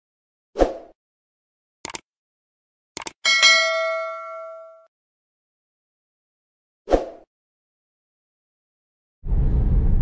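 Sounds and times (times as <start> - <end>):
double mouse click: 1.8 - 2.0, 3.0 - 3.2
notification bell ding: 3.3 - 4.9.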